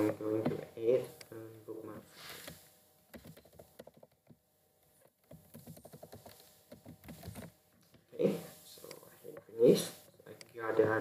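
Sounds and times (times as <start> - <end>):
computer keyboard typing: 3.1 - 4.4, 5.3 - 7.5.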